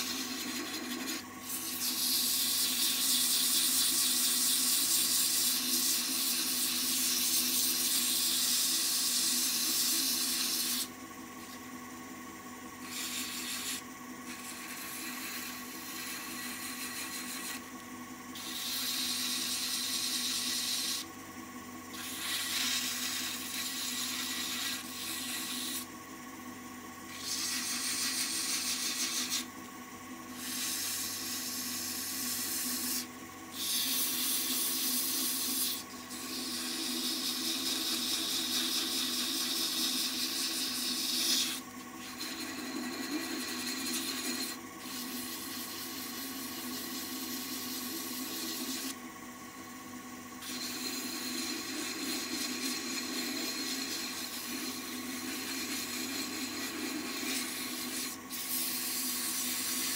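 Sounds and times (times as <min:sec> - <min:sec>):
wood lathe humming: 0:00.0 - 0:59.9
sandpaper rubbing hiss: 0:22.0 - 0:25.8, 0:27.1 - 0:29.5, 0:30.4 - 0:49.0, 0:50.4 - 0:59.9.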